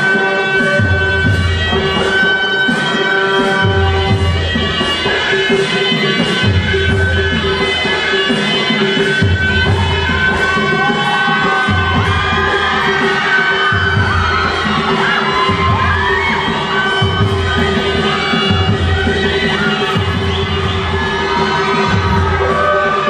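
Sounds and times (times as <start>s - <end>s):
crowd voices: 0.0s - 23.0s
shawm melody: 0.0s - 23.0s
deep drum beats: 9.0s - 22.8s.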